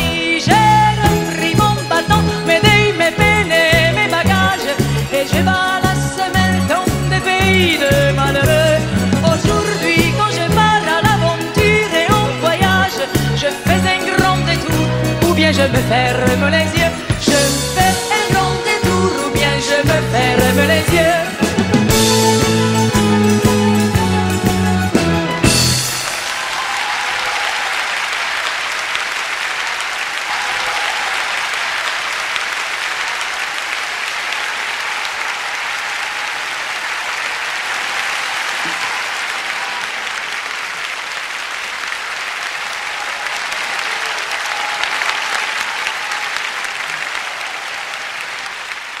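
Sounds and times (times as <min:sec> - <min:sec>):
audience applauding: 0:20.4 - 0:49.0.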